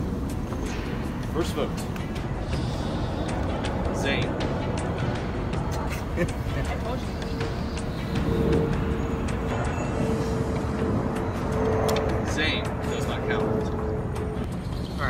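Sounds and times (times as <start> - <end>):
tense background music note: 7.0 - 14.5.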